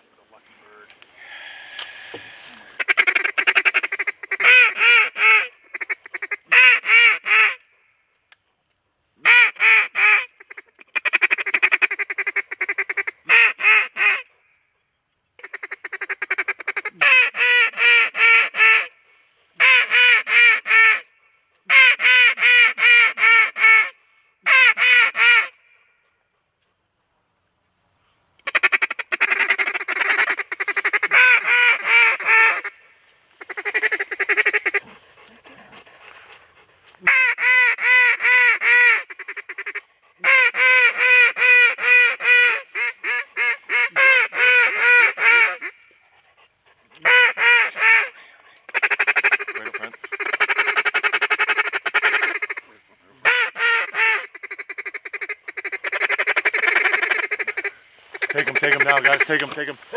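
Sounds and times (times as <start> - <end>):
goose honking: 2.1 - 7.6, 37.0 - 45.9, 47.0 - 59.9.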